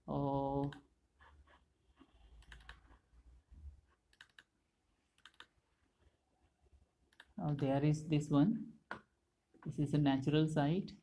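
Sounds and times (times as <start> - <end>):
computer mouse clicks: 0.6 - 3.0, 4.1 - 4.5, 5.1 - 5.6, 7.1 - 7.7.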